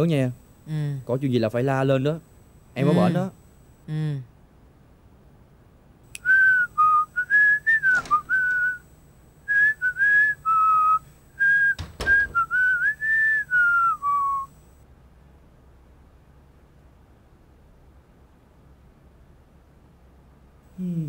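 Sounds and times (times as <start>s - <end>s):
man whistling a tune: 6.2s - 8.9s, 9.5s - 14.6s
sharp knocks: 11.8s - 12.5s.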